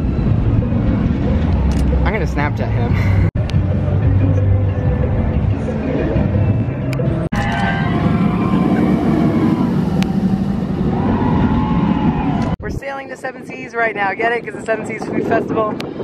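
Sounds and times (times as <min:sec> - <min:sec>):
roller coaster rumbling on track: 0:00.0 - 0:16.0.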